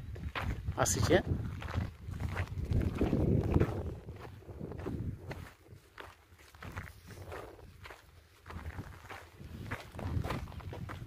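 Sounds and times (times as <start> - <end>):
footsteps on dry grass: 0.0 - 11.0.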